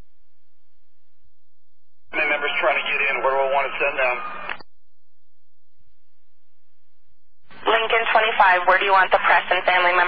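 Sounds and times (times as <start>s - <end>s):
voice over police radio: 2.1s - 4.6s, 7.6s - 10.0s.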